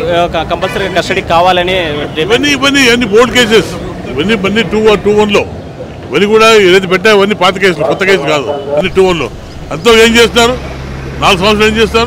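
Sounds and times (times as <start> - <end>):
man speaking into microphone: 0.0 - 5.5, 6.1 - 10.6, 11.2 - 12.0.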